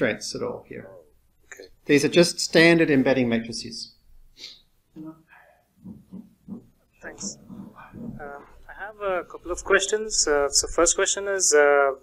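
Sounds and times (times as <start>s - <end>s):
person talking on microphone: 5.8s - 12.0s.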